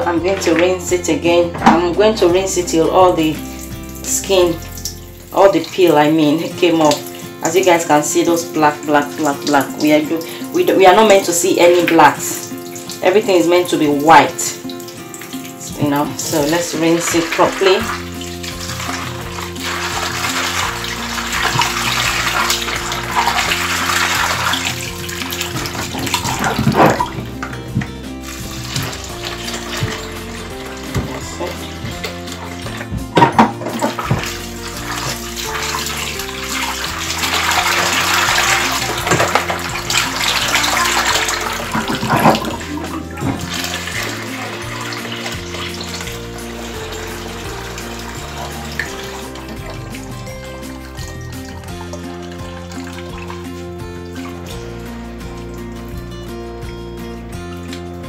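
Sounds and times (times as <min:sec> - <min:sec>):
water running and splashing: 0:01.7 - 0:58.0.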